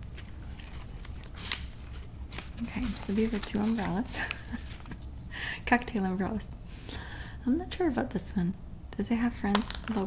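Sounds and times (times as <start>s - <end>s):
paper umbrellas clicking and rustling: 2.3s - 5.0s.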